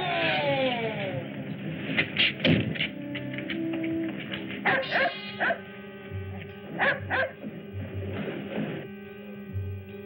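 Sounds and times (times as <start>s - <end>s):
background music: 0.0s - 10.0s
dog barking: 4.6s - 5.6s, 6.8s - 7.4s.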